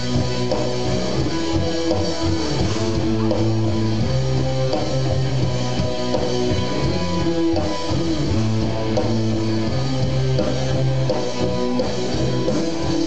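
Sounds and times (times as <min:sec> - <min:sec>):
steady bass guitar line: 0:00.0 - 0:13.0.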